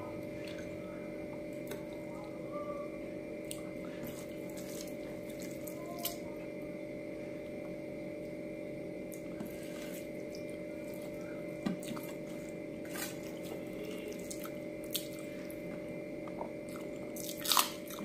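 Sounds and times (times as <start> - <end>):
steady background hum: 0.0 - 18.0
chewing with full mouth: 11.8 - 18.0.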